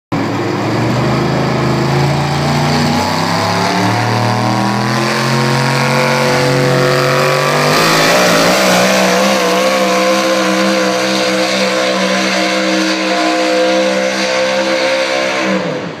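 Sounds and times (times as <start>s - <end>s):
truck engine at full throttle: 0.1s - 16.0s.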